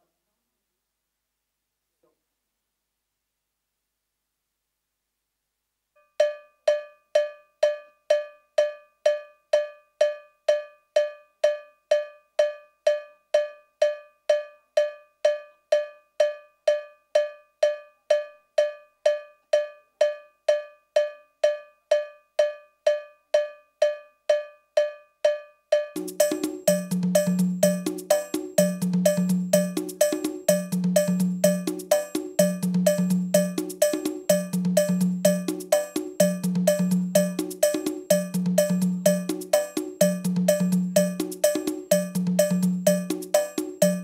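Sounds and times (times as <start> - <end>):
cowbell metronome clicks: 6.0 - 44.0.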